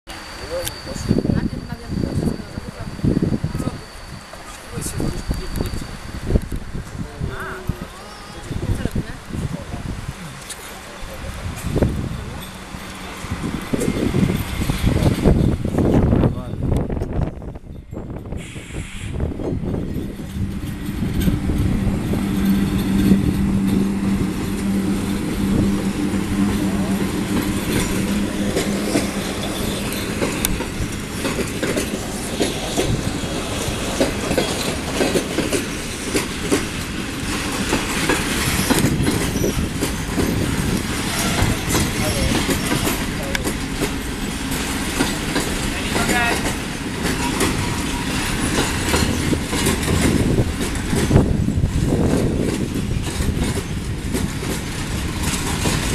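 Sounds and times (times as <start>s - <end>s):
electric locomotive humming: 0.0s - 55.9s
wagons rumbling past: 19.2s - 55.9s
wheels clattering over rail joints: 19.4s - 55.9s
wheel squeal: 38.4s - 40.1s, 41.0s - 43.0s.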